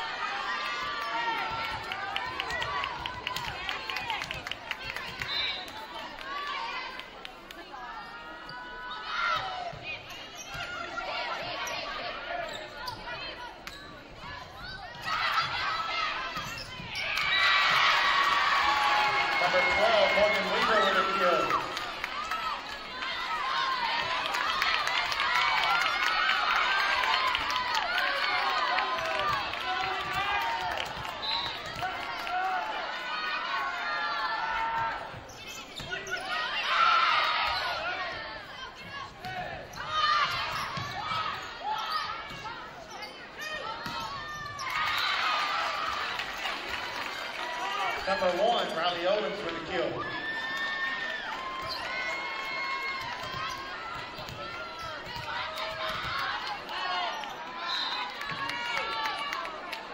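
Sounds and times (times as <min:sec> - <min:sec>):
sneakers squeaking on court: 0:08.0 - 0:17.4, 0:35.1 - 0:36.6, 0:38.8 - 0:45.0.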